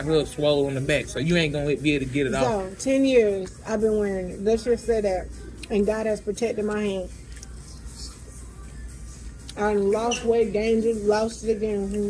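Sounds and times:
faint background music: 0:00.0 - 0:12.0
steady low hum: 0:00.0 - 0:12.0.

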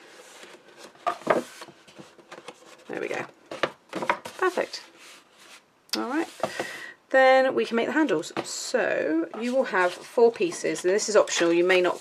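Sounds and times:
paper rustling and tapping: 0:00.4 - 0:04.6.

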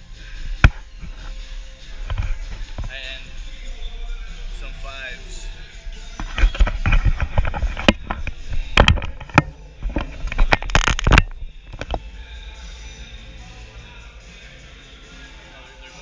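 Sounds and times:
camera being handled: 0:06.2 - 0:12.0.

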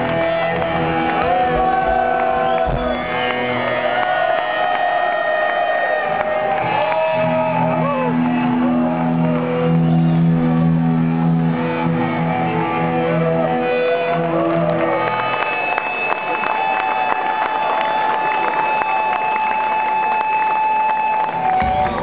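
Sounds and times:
crowd shouting: 0:00.0 - 0:10.8
electric guitars droning and bending: 0:00.0 - 0:16.5, 0:18.6 - 0:22.0.

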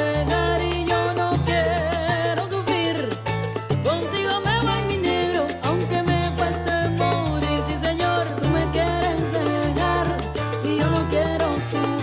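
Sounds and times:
latin band instrumental music: 0:00.0 - 0:12.0.

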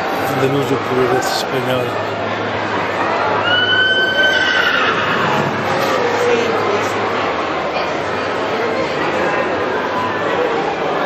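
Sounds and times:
people talking: 0:00.2 - 0:02.0, 0:05.2 - 0:11.0
horse whinnying: 0:04.0 - 0:05.6.

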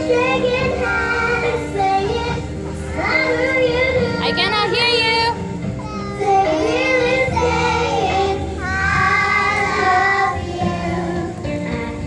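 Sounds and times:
children singing: 0:00.0 - 0:04.2, 0:06.0 - 0:12.0
musical accompaniment: 0:00.0 - 0:12.0.

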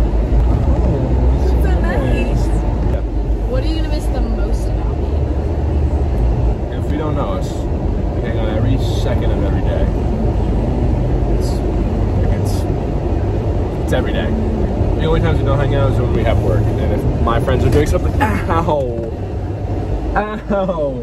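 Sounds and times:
car road rumble: 0:00.0 - 0:21.0
two people talking: 0:00.6 - 0:05.5, 0:06.2 - 0:21.0.

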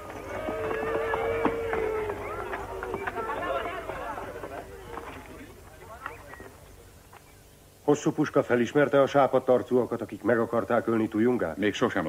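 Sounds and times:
faint background voices: 0:00.0 - 0:07.6
steady low hum: 0:00.0 - 0:12.0.

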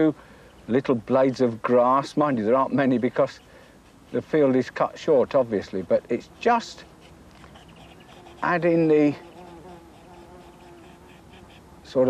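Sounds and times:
insect buzzing: 0:07.4 - 0:11.6.

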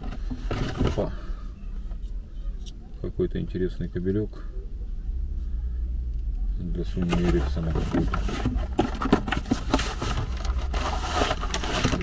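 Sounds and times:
cardboard box scraping cardboard: 0:07.0 - 0:12.0.

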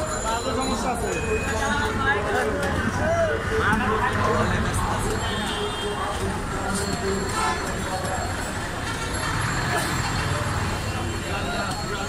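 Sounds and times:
traffic rumble: 0:01.7 - 0:12.0.

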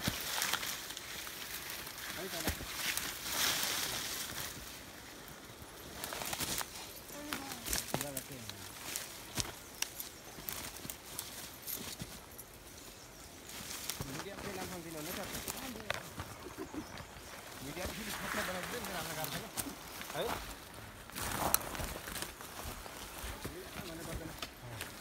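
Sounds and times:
twigs snapping: 0:00.0 - 0:04.7, 0:05.4 - 0:12.0, 0:21.1 - 0:25.0
brush and grass rustling: 0:00.0 - 0:25.0.

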